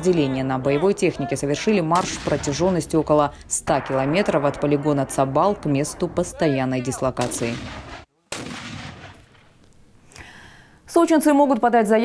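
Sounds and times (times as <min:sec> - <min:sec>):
mortar shot report: 0:01.8 - 0:09.5.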